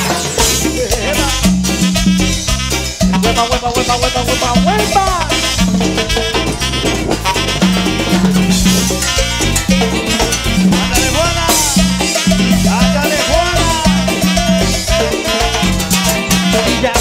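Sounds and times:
drums: 0:00.0 - 0:17.0
live band playing: 0:00.0 - 0:17.0
repeating bass line: 0:00.0 - 0:17.0
sliding lead melody: 0:00.0 - 0:17.0.

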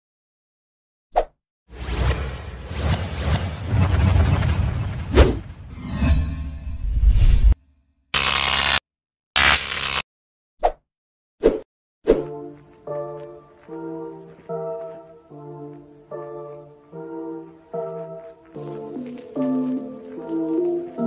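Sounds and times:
buzzy tone blasts: 0:08.2 - 0:08.8, 0:09.4 - 0:10.0.

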